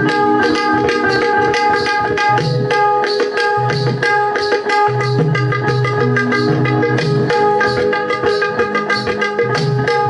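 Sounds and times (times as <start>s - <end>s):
hand drum solo: 0.0s - 10.0s.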